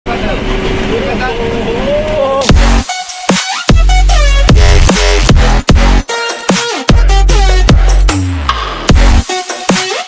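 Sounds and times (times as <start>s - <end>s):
engine and road noise: 0.1s - 2.4s.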